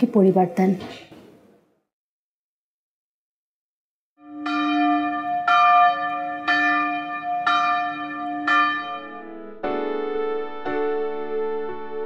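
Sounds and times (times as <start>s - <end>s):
church bell ringing: 4.2s - 9.8s
piano music: 4.2s - 12.0s.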